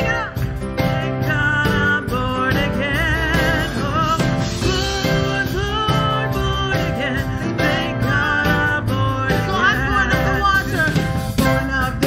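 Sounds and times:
band with keyboard: 0:00.0 - 0:12.0
woman singing lead: 0:00.0 - 0:12.0.

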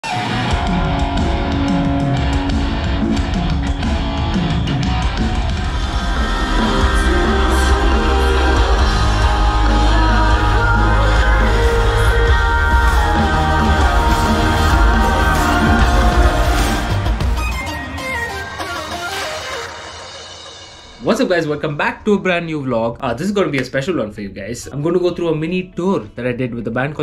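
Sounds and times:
live band playing rock music: 0:00.0 - 0:21.0
person singing: 0:05.7 - 0:19.7.

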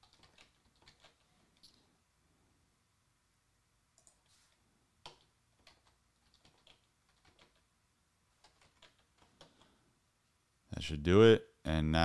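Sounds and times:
computer keyboard keystrokes: 0:00.0 - 0:01.2, 0:05.0 - 0:07.6, 0:08.4 - 0:09.7.

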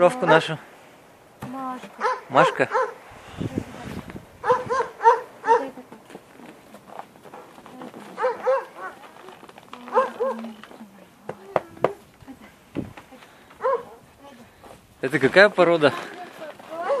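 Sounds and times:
dog yapping: 0:02.0 - 0:03.0, 0:04.4 - 0:05.8, 0:08.1 - 0:09.1, 0:09.8 - 0:10.6, 0:13.6 - 0:14.0, 0:16.8 - 0:17.0.

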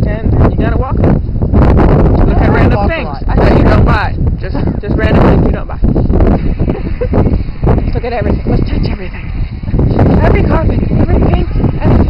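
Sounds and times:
woman talking: 0:00.0 - 0:01.0, 0:02.2 - 0:05.8, 0:07.9 - 0:09.3, 0:10.2 - 0:12.0
steady low rumble: 0:00.0 - 0:12.0.

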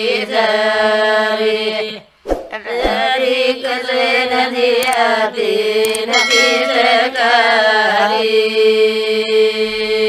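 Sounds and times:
women singing folk song in unison: 0:00.0 - 0:10.0.

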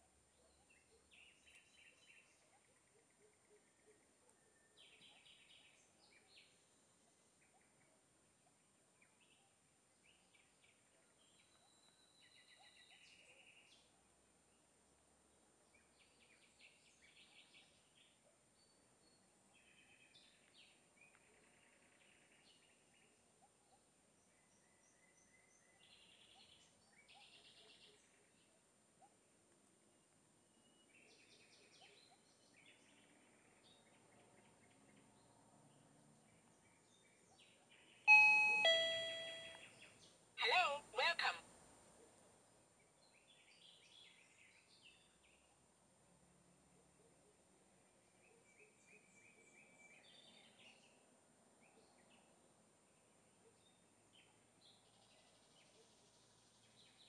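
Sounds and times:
faint bird chirps: 0:00.1 - 0:14.7, 0:15.7 - 0:29.3
electronic two-note chime: 0:38.1 - 0:39.6.

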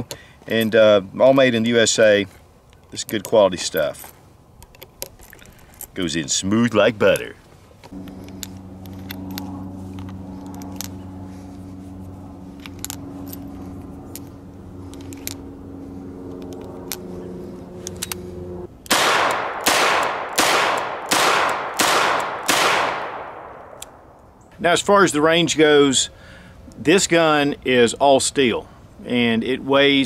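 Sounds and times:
revolver gunshots: 0:18.9 - 0:24.0.

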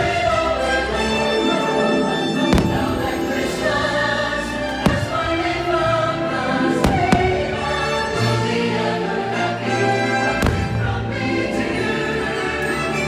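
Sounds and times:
choral music: 0:00.0 - 0:13.0
firework shells bursting with booms: 0:02.5 - 0:03.1, 0:04.8 - 0:05.6, 0:10.4 - 0:11.0.

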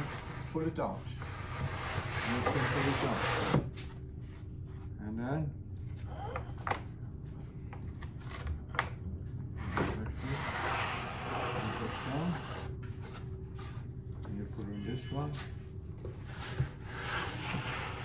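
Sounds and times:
steady low hum: 0:00.0 - 0:18.0
plywood scraping across plywood: 0:01.2 - 0:03.8, 0:09.7 - 0:13.7, 0:16.3 - 0:18.0.

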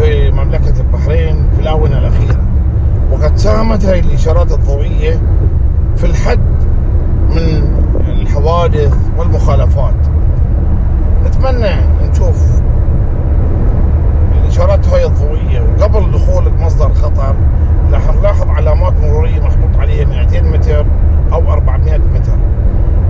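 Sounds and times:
man talking: 0:00.0 - 0:02.5, 0:03.1 - 0:05.2, 0:06.0 - 0:06.5, 0:07.3 - 0:10.1, 0:11.2 - 0:12.6, 0:14.3 - 0:22.4
car road and engine rumble: 0:00.0 - 0:23.0.

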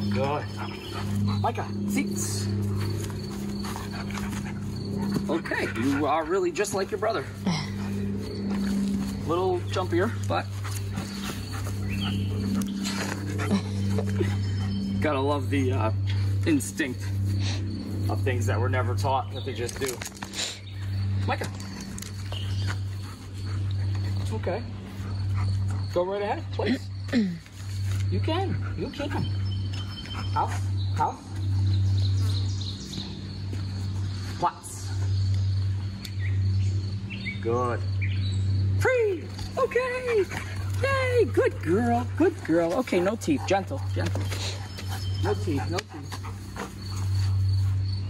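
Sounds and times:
low steady rumble: 0:00.0 - 0:19.7
steady low hum: 0:00.0 - 0:48.0.

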